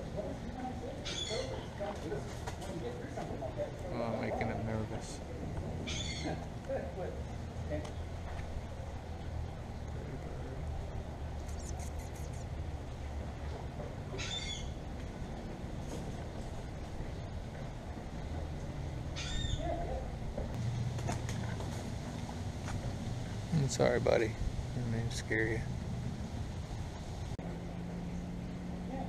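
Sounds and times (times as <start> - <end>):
steady low hum: 0.0 - 29.0
bird short high calls: 14.2 - 14.8.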